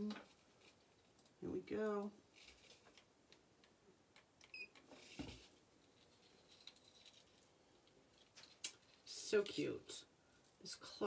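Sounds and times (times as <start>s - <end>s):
faint rustling: 0.0s - 3.1s, 4.9s - 11.0s.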